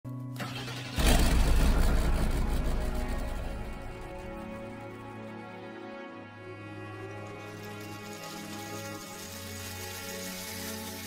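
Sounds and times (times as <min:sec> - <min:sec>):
theme music: 0:00.2 - 0:11.0
bass-heavy swell: 0:01.0 - 0:05.8.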